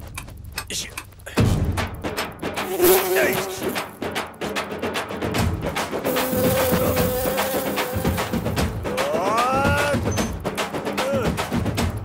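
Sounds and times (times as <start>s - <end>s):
rhythmic percussive music: 0.0s - 12.0s
housefly buzzing: 2.6s - 4.2s, 6.0s - 9.3s.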